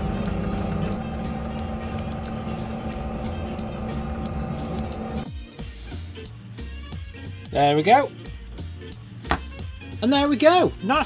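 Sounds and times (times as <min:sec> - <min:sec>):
pillar drill humming: 0:00.0 - 0:05.3
background music: 0:00.0 - 0:11.0.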